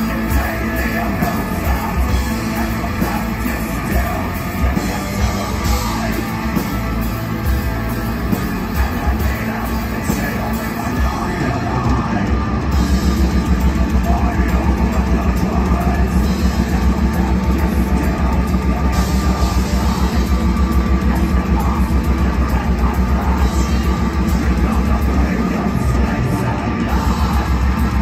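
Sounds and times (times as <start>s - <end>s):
bass guitar: 0.0s - 28.0s
electric guitar: 0.0s - 28.0s
fast drum beat: 0.0s - 28.0s.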